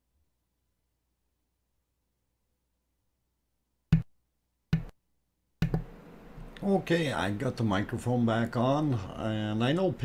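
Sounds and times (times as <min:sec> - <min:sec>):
room sound: 0:00.0 - 0:10.0.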